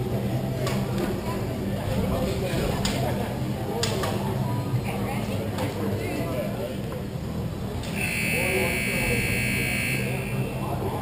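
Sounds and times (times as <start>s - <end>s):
scoreboard buzzer high tone: 7.9s - 10.6s.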